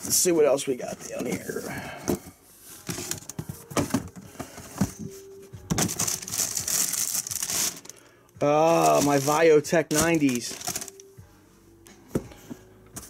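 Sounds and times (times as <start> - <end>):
tissue paper rustling: 5.8 - 8.0, 8.6 - 11.0.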